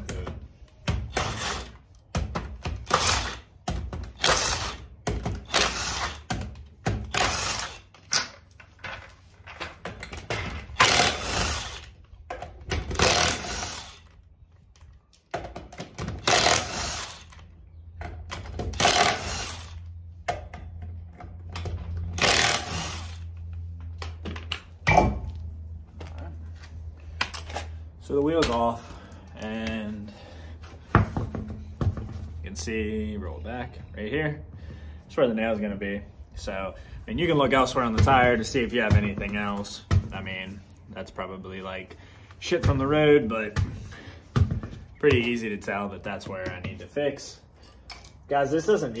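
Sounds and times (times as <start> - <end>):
impact gun hammering lug nuts: 10.7 - 11.8, 12.6 - 13.9, 18.3 - 19.6, 22.1 - 23.2.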